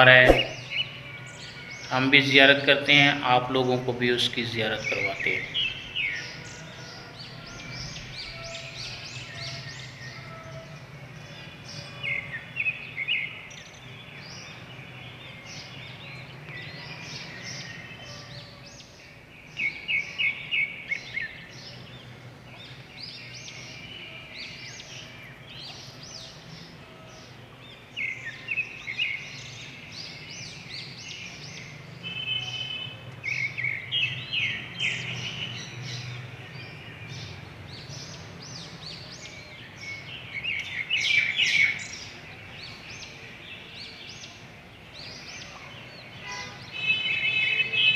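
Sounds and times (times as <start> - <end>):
small birds chirping: 3.4 - 10.4, 11.4 - 47.9.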